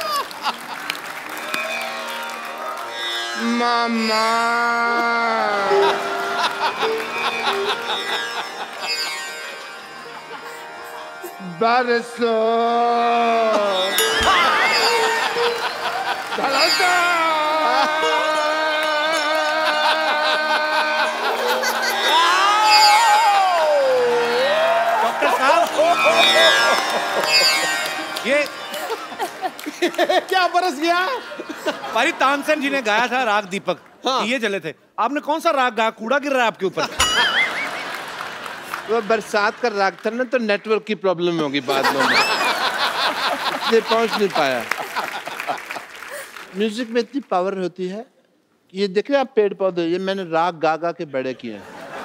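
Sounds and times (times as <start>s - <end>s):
audience laughing: 0.0s - 1.4s, 4.9s - 11.4s, 13.5s - 22.9s, 23.6s - 27.7s, 28.4s - 33.9s, 36.8s - 40.0s, 41.6s - 46.5s, 51.4s - 52.0s
audience clapping: 0.0s - 4.4s, 5.4s - 10.4s, 14.0s - 20.4s, 21.0s - 31.2s, 37.0s - 40.8s, 42.0s - 47.6s
crowd noise: 0.0s - 11.4s, 13.4s - 34.0s, 36.9s - 40.1s
drone accompaniment: 13.8s - 16.8s, 25.2s - 29.4s.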